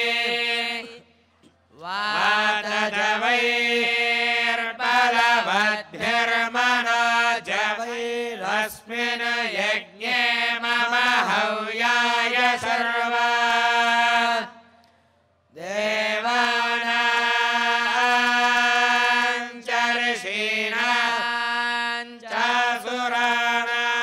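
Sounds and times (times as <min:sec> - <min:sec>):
men chanting mantras: 0:00.0 - 0:14.8, 0:15.5 - 0:24.0.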